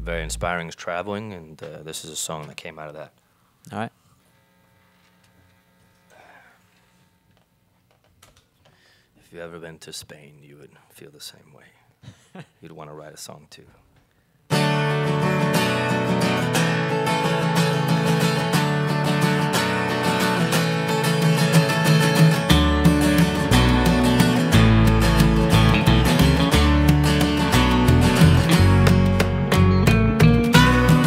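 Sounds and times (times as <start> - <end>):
upright bass: 0.0 - 0.7, 21.2 - 31.0
electric guitar: 14.5 - 31.0
strummed acoustic guitar: 14.5 - 31.0.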